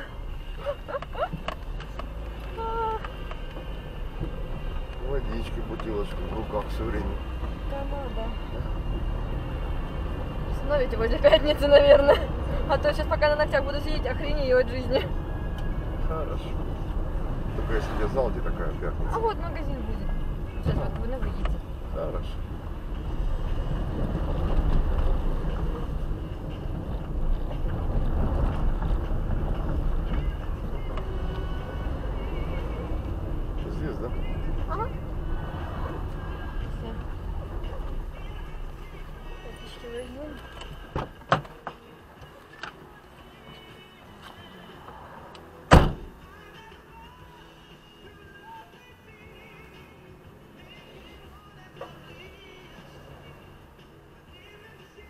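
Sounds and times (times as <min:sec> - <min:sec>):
engine and tyres rumbling: 0:00.0 - 0:55.0
car knocks and rattles: 0:40.9 - 0:41.8, 0:45.7 - 0:46.2.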